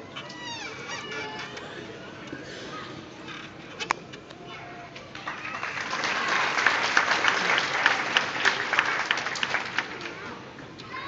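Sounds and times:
murmur of audience chatter: 0.0 - 11.0.

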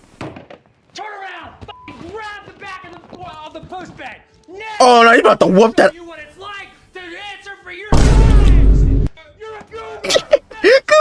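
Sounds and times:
loud distorted boom: 7.9 - 9.1.

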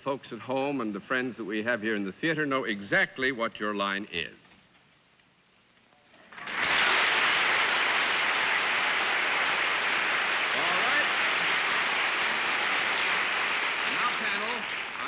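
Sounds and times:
studio audience applause: 6.3 - 15.0.

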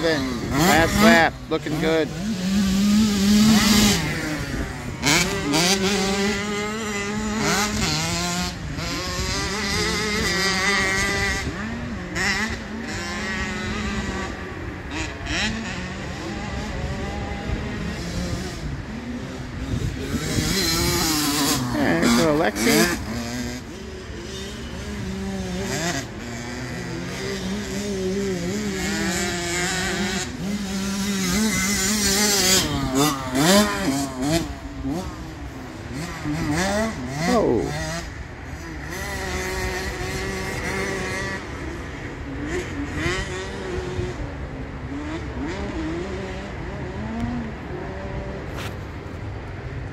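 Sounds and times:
motocross bikes revving: 0.0 - 49.9
motorbike passing close: 0.0 - 49.9.

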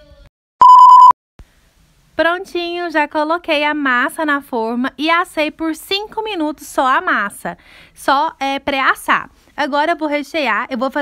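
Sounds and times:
loud electronic beep: 0.6 - 1.2.

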